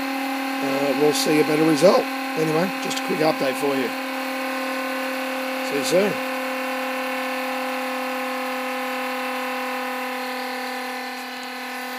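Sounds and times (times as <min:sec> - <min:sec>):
pulse motor humming: 0:00.0 - 0:11.9.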